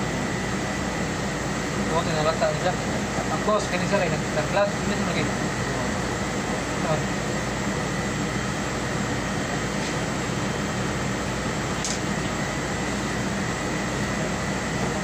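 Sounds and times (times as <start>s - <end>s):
mechanical hum with air rush: 0.0s - 15.0s.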